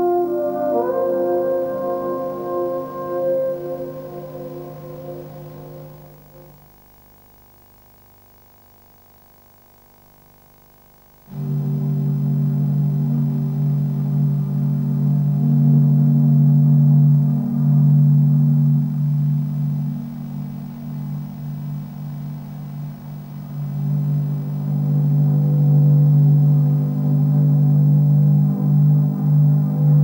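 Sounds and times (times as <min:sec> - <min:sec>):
jazz ensemble holding low notes: 0:00.0 - 0:06.5, 0:11.3 - 0:30.0.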